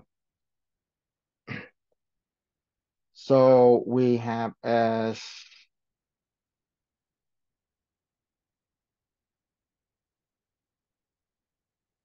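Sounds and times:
person clearing throat: 1.5 - 1.8.

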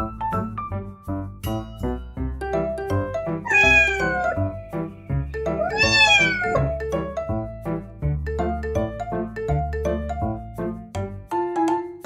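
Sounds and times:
bouncy plucked background music: 1.0 - 12.0
cat meowing: 3.5 - 4.6, 5.4 - 6.8.

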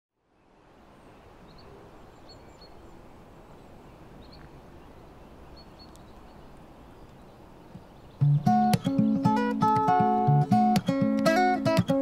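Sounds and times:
high bird chirps: 3.6 - 9.8.

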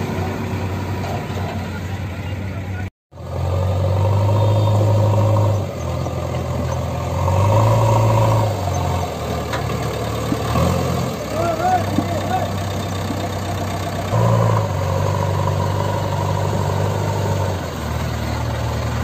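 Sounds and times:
diesel engine revving: 0.0 - 19.0.

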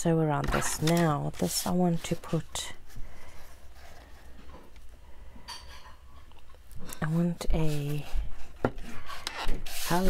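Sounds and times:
scratchy paper scrape: 7.0 - 10.0
paper sliding and rustling: 8.8 - 10.0.

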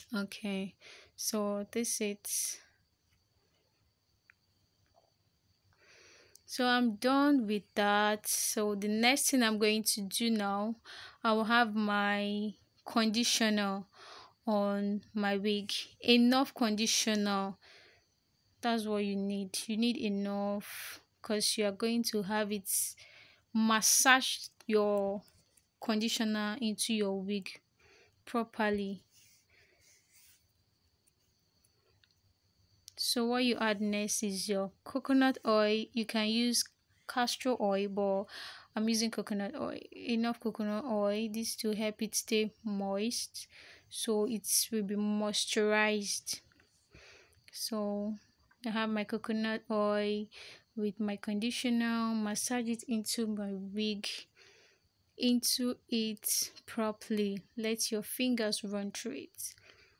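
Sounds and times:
faint soft hiss: 0.0 - 40.8.

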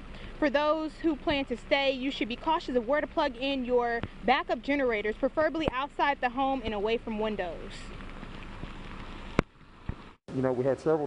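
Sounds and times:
rain hiss: 0.0 - 10.6
tyres on wet brick street: 0.0 - 11.0.

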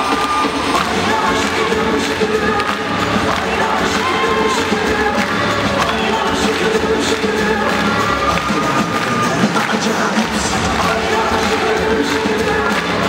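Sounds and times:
music over loudspeakers: 0.0 - 13.0.

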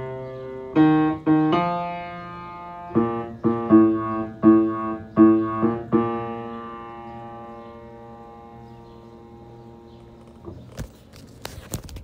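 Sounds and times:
piano chord: 0.0 - 10.2.

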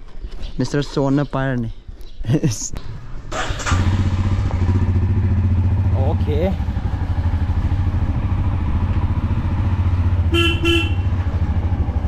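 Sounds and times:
motorcycle engine starting and idling: 2.9 - 12.0.

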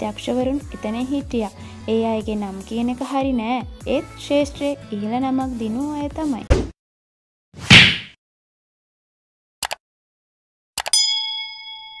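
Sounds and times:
bright bell ding: 10.9 - 12.0.

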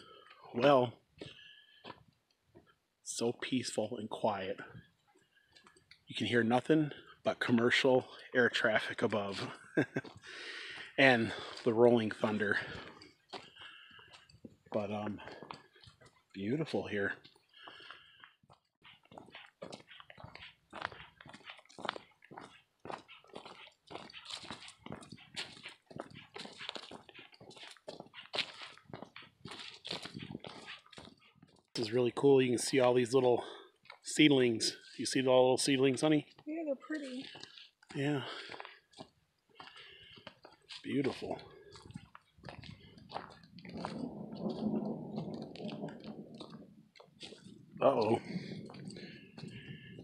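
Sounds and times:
footsteps crunching on dry leaves: 23.4 - 31.1
distant thunder rumble: 43.6 - 46.9.

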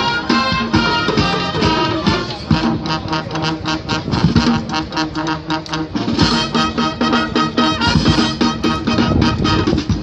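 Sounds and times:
steady drum beat: 0.0 - 10.0
wind band playing marching tune: 0.0 - 10.0.

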